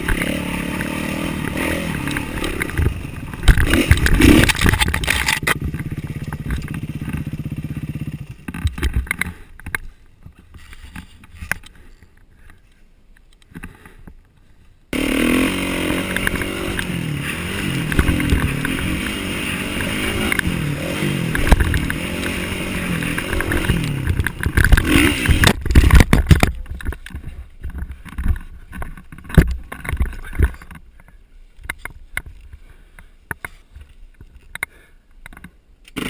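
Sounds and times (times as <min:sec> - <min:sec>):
motorcycle engine revving: 0:00.0 - 0:08.7, 0:14.9 - 0:25.6.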